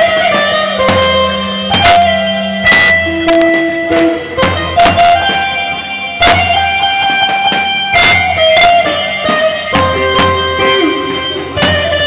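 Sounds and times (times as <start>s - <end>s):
slow folk melody: 0.0s - 12.0s.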